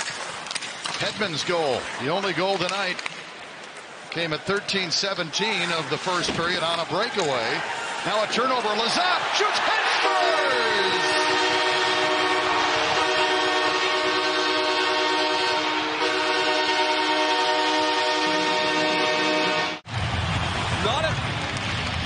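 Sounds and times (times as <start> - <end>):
arena goal horn blaring: 10.0 - 19.8.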